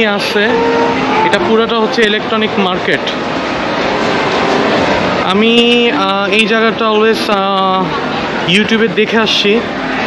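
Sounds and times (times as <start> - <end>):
shopping mall background noise: 0.0 - 10.0.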